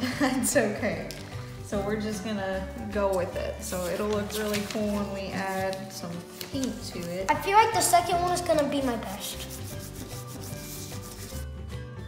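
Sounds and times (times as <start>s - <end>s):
quiet background music: 0.0s - 12.0s
crayon scratching on paper: 8.0s - 11.5s.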